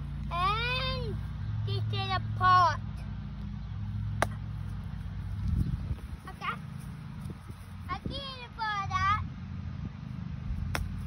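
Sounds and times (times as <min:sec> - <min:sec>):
steady low hum: 0:00.0 - 0:11.0
golf club striking ball: 0:10.7 - 0:11.0.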